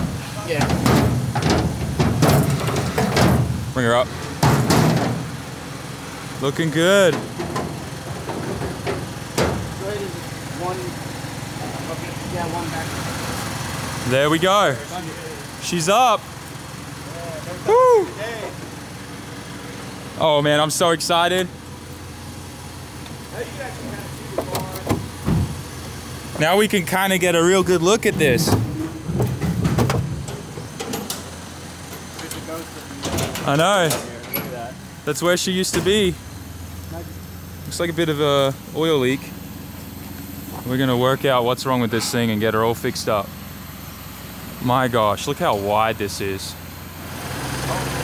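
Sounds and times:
truck engine running: 0.0 - 48.0.

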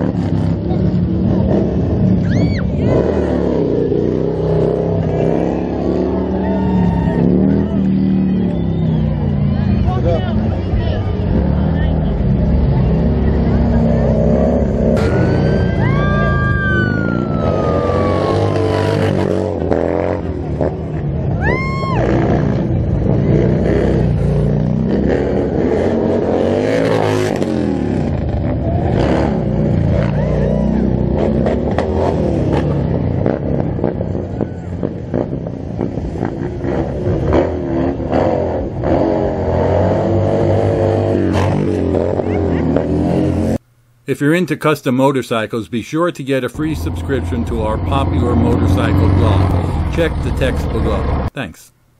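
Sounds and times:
crowd chatter: 0.0 - 24.7, 28.4 - 31.9, 33.8 - 36.0, 41.1 - 43.4
motorcycle engines revving: 0.0 - 43.7, 46.4 - 51.8.

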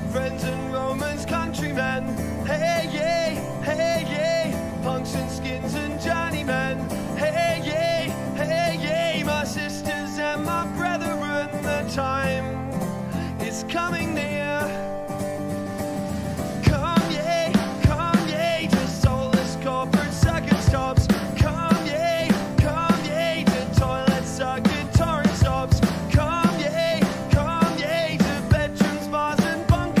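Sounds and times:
man singing: 0.0 - 15.2, 16.6 - 30.0
acoustic guitar: 0.0 - 30.0.

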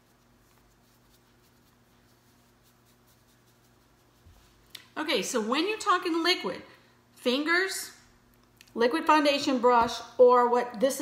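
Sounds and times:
applicator scratching on skin: 0.0 - 4.2
steady low hum: 0.0 - 10.9.

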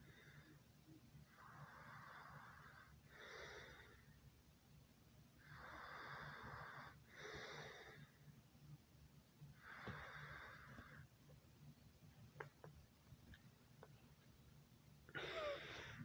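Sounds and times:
soft slow breathing: 0.0 - 4.2, 9.4 - 11.4, 15.1 - 16.0.

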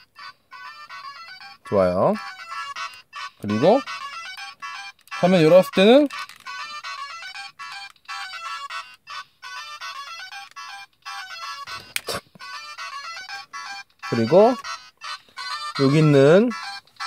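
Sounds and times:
toy beeping electronic melody: 0.0 - 17.0.

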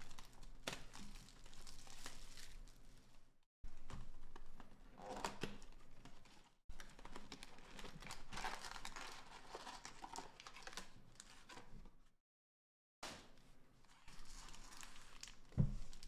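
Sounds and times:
plastic packs crinkling and rustling: 0.0 - 2.8, 3.7 - 11.8, 13.9 - 16.0.

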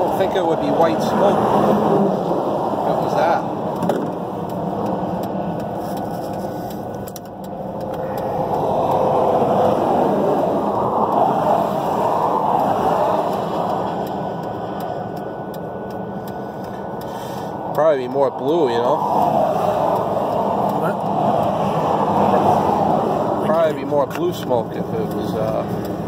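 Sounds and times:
road traffic rushing: 0.0 - 26.0.

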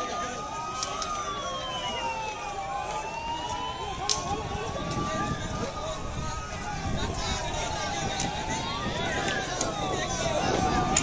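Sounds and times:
crowd voices: 0.0 - 11.0
siren wailing: 0.0 - 11.0
sharp crack: 4.0 - 4.4.

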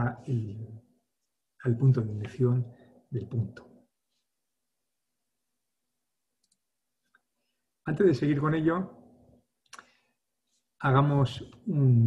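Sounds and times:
man speaking: 0.0 - 0.9, 1.6 - 3.8, 7.9 - 9.0, 10.8 - 12.0.

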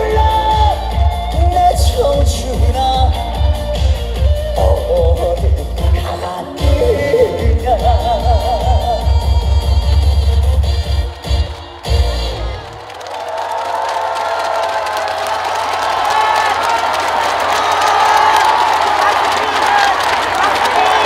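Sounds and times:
loud music with heavy bass beat: 0.0 - 12.6
crowd cheering and shouting: 0.0 - 21.0.

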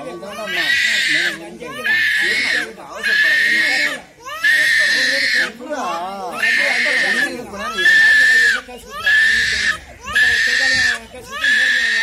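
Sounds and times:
infant screaming: 0.2 - 12.0.

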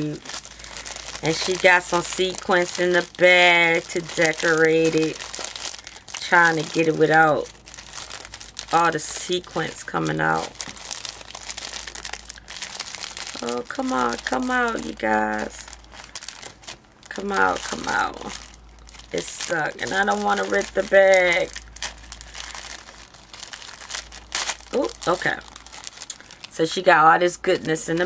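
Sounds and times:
plastic bag crinkling: 0.0 - 26.9, 27.5 - 28.0.

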